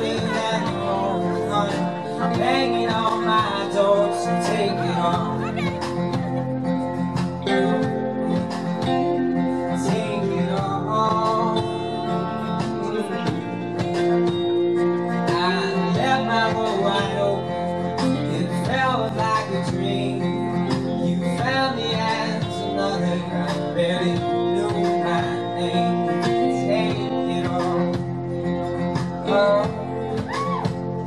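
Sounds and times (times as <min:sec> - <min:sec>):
acoustic guitar strumming: 0:00.0 - 0:31.0
man singing: 0:00.0 - 0:31.0.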